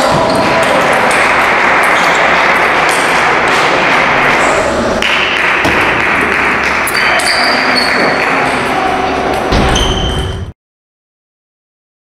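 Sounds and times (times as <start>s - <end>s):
hall chatter: 0.0s - 9.8s.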